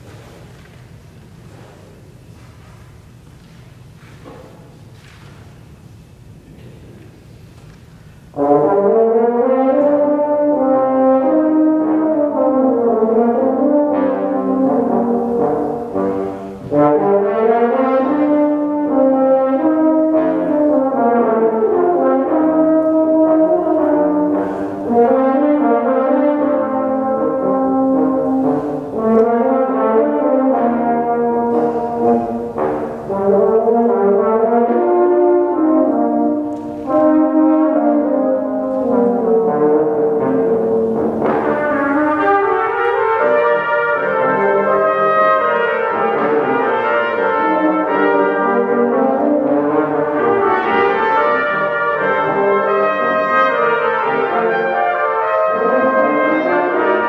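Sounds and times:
trombones: 0:00.0 - 0:57.0
french horn: 0:07.6 - 0:57.0
trumpets: 0:08.2 - 0:57.0.

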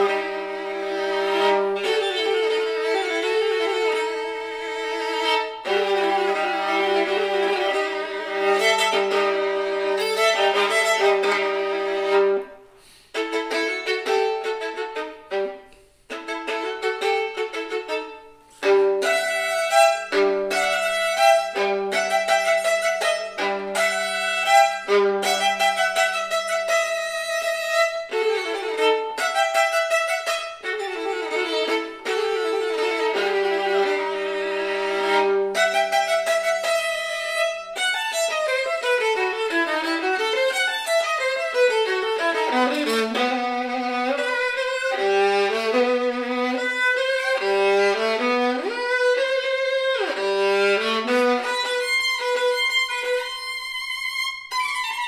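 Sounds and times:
solo violin bowed: 0:00.0 - 0:55.0.

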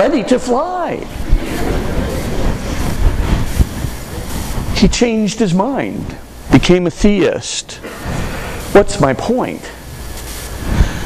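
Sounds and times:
audience laughing: 0:01.2 - 0:03.3.

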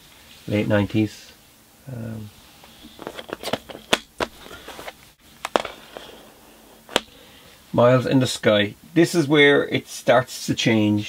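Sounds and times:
plastic cd cases clicking: 0:02.8 - 0:06.2, 0:06.8 - 0:07.2.

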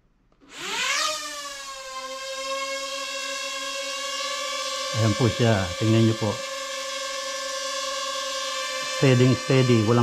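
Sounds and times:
drone propeller whine: 0:00.5 - 0:10.0.

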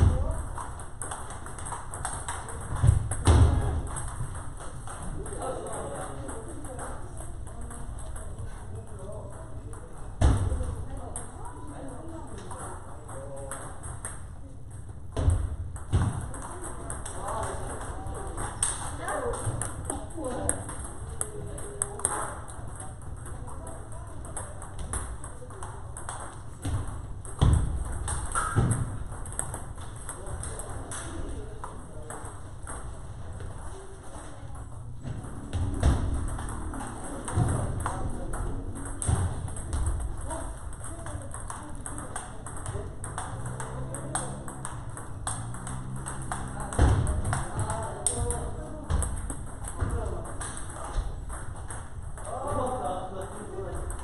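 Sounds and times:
voices in background: 0:00.0 - 0:54.0
table tennis ball clicks: 0:35.3 - 0:48.3.

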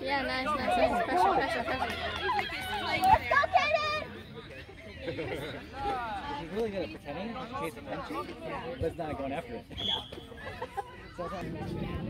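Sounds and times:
people chattering and calling out: 0:00.0 - 0:12.0.

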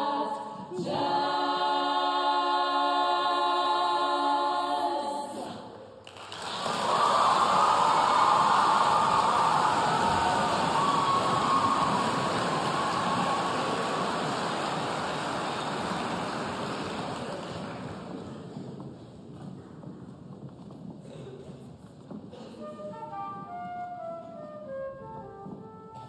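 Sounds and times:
women's choir singing chord: 0:00.0 - 0:05.5
audience applauding and cheering: 0:06.0 - 0:18.4.

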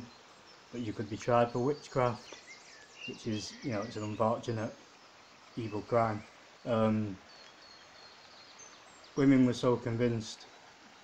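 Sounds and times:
distant birds chirping: 0:00.0 - 0:11.0
man speaking: 0:00.8 - 0:02.2, 0:03.1 - 0:04.8, 0:05.6 - 0:07.2, 0:09.2 - 0:10.4.

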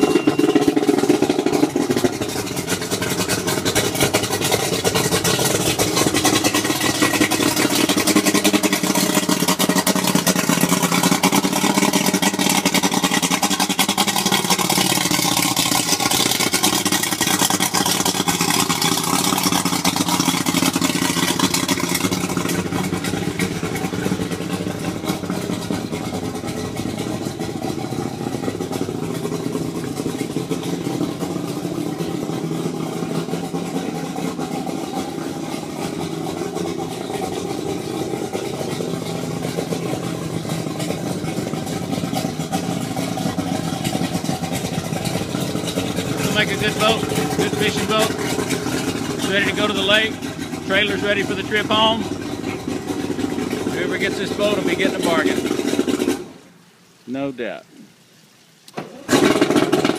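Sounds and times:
outboard motor idling: 0:00.0 - 0:59.9.

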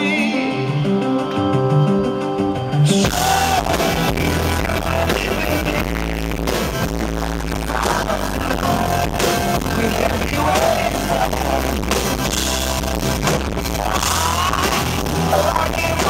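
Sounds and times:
lead vocal singing: 0:00.0 - 0:01.5, 0:02.6 - 0:12.6, 0:13.5 - 0:16.0
live pop-rock band: 0:00.0 - 0:16.0.

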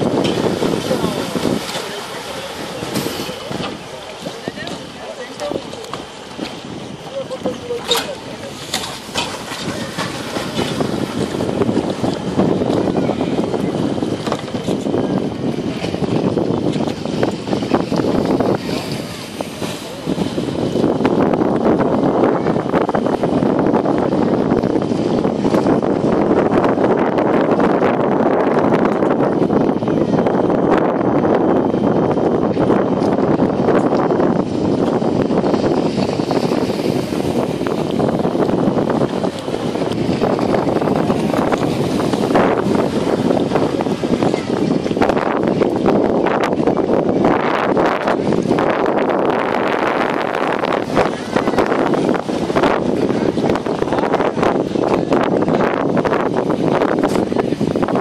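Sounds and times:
indistinct voices: 0:00.0 - 0:25.8
wind buffeting microphone: 0:00.0 - 0:58.0.

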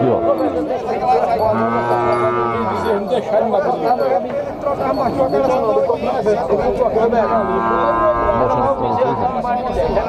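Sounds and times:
cow mooing: 0:00.0 - 0:03.0, 0:07.2 - 0:09.6
people's voices: 0:00.0 - 0:10.0.

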